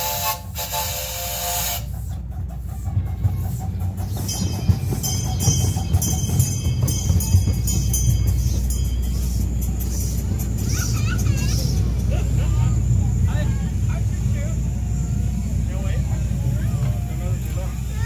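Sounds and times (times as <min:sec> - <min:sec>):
ride car rumbling along: 0:00.0 - 0:18.0
faint voices: 0:00.1 - 0:18.0.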